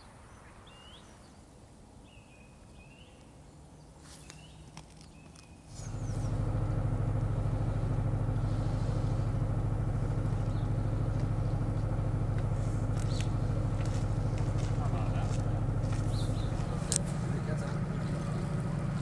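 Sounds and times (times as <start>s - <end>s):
engine idling: 5.7s - 19.0s.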